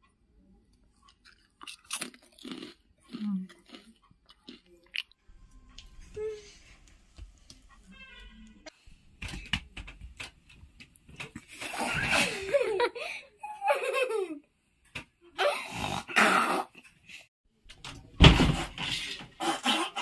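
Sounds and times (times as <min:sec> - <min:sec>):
girl laughing: 0:11.8 - 0:14.4.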